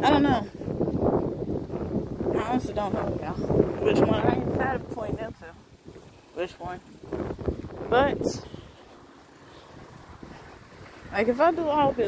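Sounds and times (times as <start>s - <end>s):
wind on microphone: 0.0s - 8.9s, 9.6s - 12.0s.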